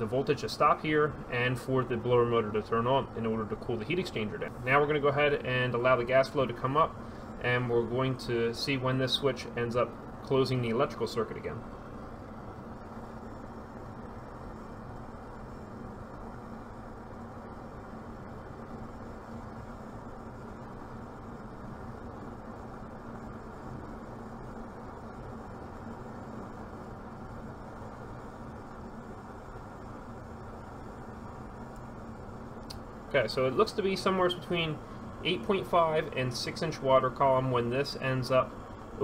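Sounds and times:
faint hum: 0.0s - 39.0s
gas burner flame rushing: 0.0s - 39.0s.

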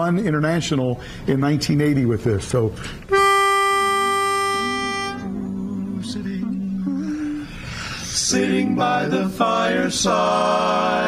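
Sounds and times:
pitch pipe note: 3.1s - 5.8s
people humming: 3.8s - 11.0s.

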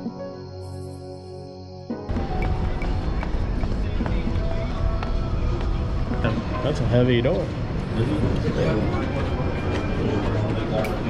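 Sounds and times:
footsteps on concrete steps: 2.1s - 6.6s
faint background voices: 2.6s - 11.0s.

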